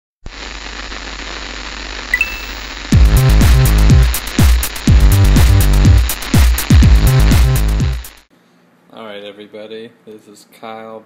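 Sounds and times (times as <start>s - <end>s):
television static hiss: 0.3s - 3.0s
short high tones: 2.1s - 2.8s
electronic dance music: 2.2s - 8.2s.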